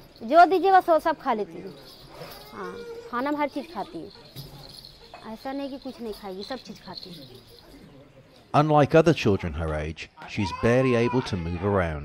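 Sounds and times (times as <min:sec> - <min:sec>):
man speaking: 0:08.5 - 0:12.0.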